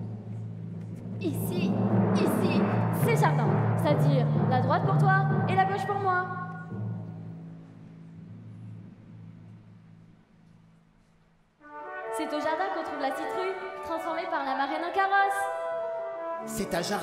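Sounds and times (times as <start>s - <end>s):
music with voices: 0.0s - 8.9s, 11.8s - 17.0s
orchestra chord with brass: 11.6s - 14.2s, 15.5s - 17.0s.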